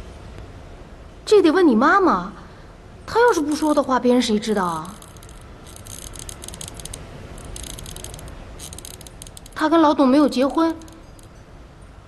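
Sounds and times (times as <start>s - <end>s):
fast high-pitched clicking: 3.2s - 3.9s, 4.5s - 11.4s.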